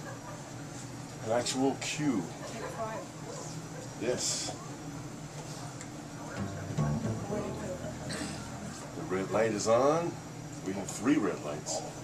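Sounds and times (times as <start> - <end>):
plucked upright bass: 6.3 - 8.9
acoustic guitar: 6.3 - 9.0.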